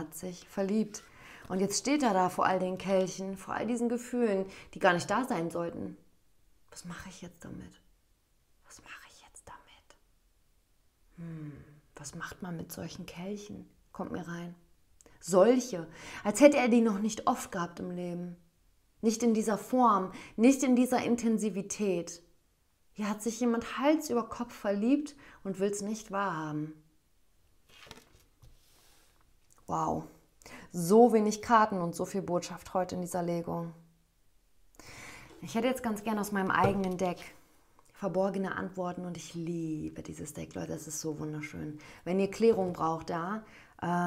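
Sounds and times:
faint whispered sounds: 0:06.7 - 0:07.9, 0:08.6 - 0:10.1
card brushing on tabletop: 0:27.7 - 0:29.2.

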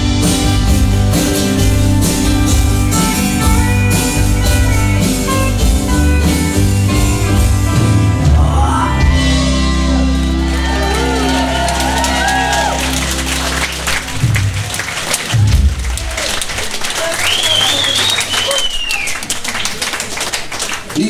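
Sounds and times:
acoustic rock band chord ringing: 0:00.0 - 0:15.0
audience clapping and cheering: 0:09.9 - 0:21.0
whistle from crowd: 0:17.2 - 0:19.3.

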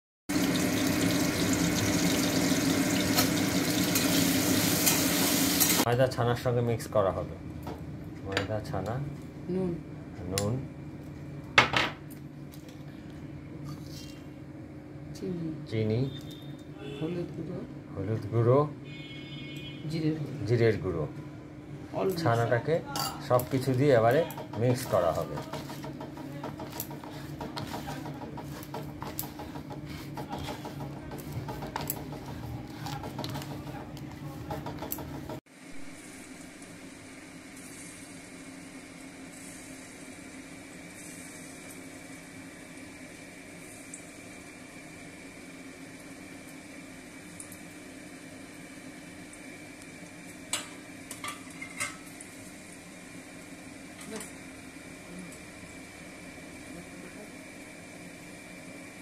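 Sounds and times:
food sizzling in oil: 0:00.3 - 0:05.9, 0:23.0 - 0:59.0
hands kneading cheese in a pan: 0:24.7 - 0:35.4.

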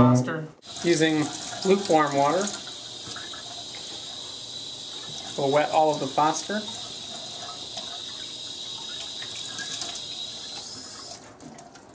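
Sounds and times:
tap water running into sink: 0:00.6 - 0:11.9.

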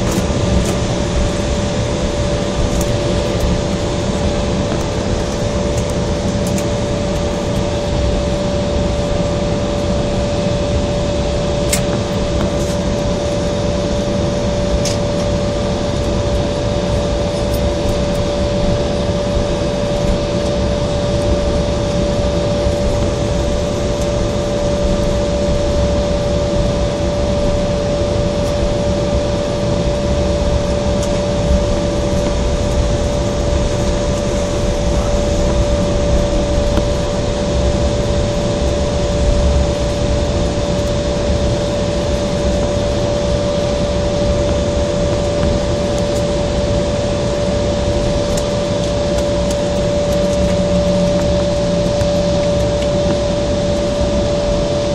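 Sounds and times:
aircraft cabin rush and rumble: 0:00.0 - 0:54.9
constant engine whine: 0:00.0 - 0:54.9.

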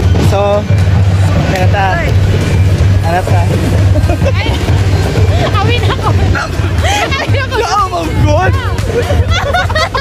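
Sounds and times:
background music with low bass: 0:00.0 - 0:10.0.

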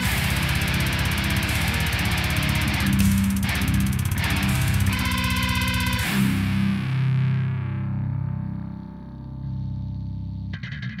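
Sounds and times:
distorted metal guitar and bass chord: 0:00.0 - 0:11.0.

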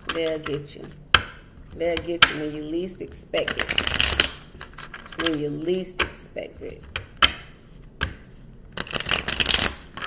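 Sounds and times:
cards shuffling: 0:03.4 - 0:10.0.

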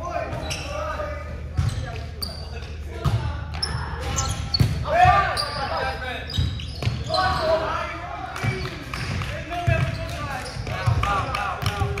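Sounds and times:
sneakers squeaking on hardwood: 0:00.3 - 0:07.6, 0:08.4 - 0:11.0.

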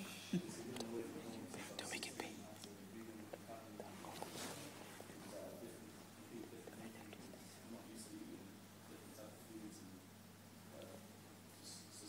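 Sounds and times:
faint muffled speech: 0:00.0 - 0:10.1, 0:10.7 - 0:12.0
person whispering: 0:00.1 - 0:02.8, 0:06.6 - 0:07.6.

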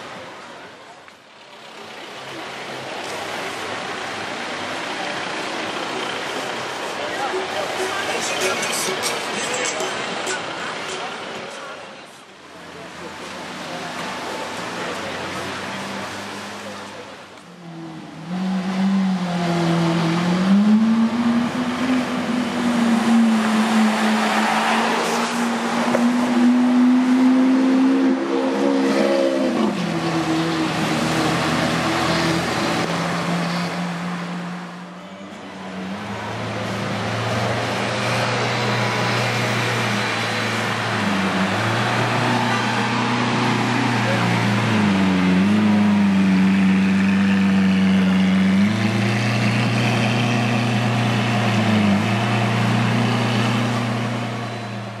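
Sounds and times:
people's voices: 0:00.0 - 0:18.4, 0:34.8 - 0:53.7.

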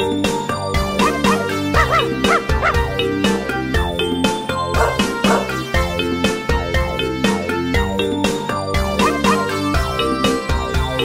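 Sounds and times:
bouncy children's song music: 0:00.0 - 0:11.0
dog barking: 0:01.8 - 0:02.8, 0:04.8 - 0:05.5.

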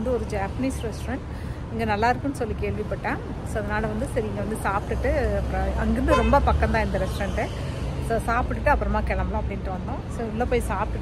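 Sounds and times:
street traffic rumble: 0:00.0 - 0:11.0
woman talking: 0:00.0 - 0:11.0.

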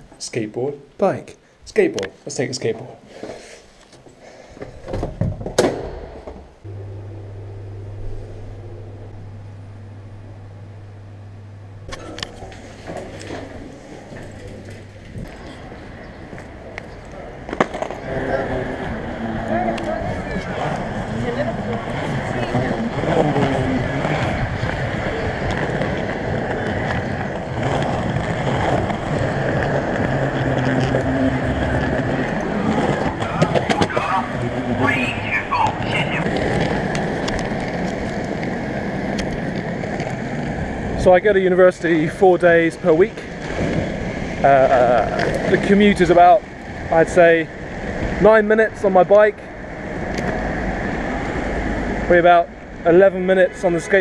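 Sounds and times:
skateboard wheels rolling on concrete: 0:07.5 - 0:54.0.

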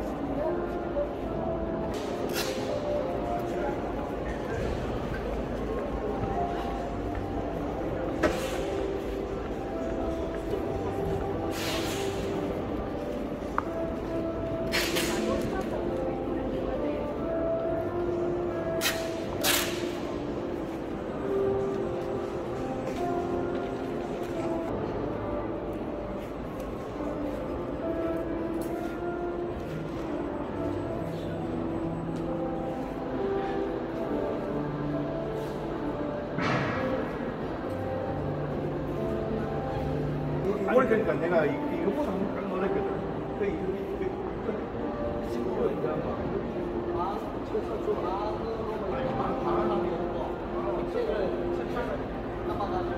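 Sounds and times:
background music of held notes: 0:00.0 - 0:52.9
murmur of people talking: 0:00.0 - 0:52.9.

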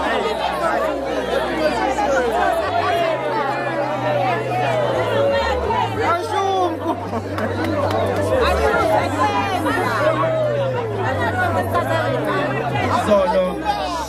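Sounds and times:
crowd chatter: 0:00.0 - 0:14.0.

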